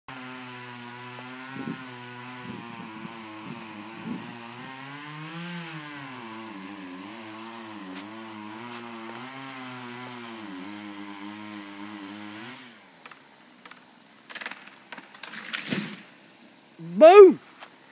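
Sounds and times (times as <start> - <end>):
chainsaw cutting wood: 0.1 - 16.3.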